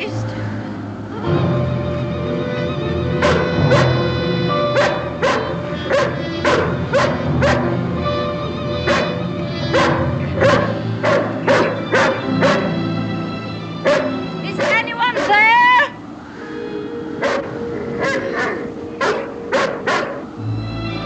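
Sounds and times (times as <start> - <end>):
dramatic orchestral music: 0.0 - 21.0
dog barking: 3.2 - 7.8, 8.8 - 12.8, 13.8 - 15.6, 17.2 - 20.3.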